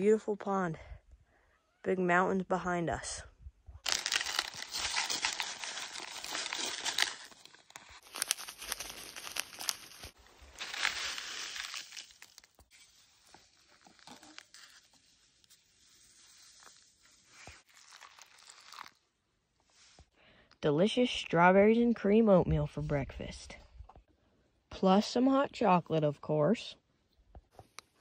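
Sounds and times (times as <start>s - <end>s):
food packets crinkling and tearing: 3.8s - 15.0s, 17.4s - 19.0s.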